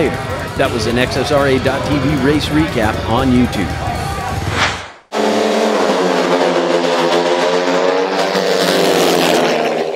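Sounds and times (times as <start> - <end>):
racing engine at high revs: 5.1 - 9.9.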